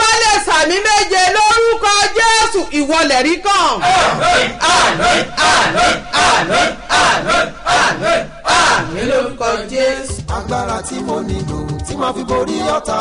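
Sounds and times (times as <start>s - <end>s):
woman shouting prayer: 0.0s - 3.8s.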